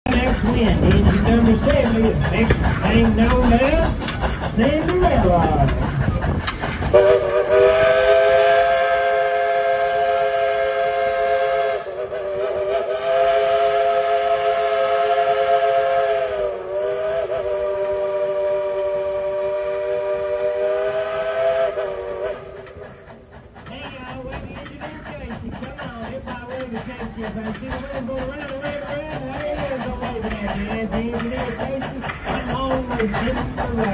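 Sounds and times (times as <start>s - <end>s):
low rumble of train: 0.0s - 33.9s
steam locomotive whistle: 6.9s - 22.8s.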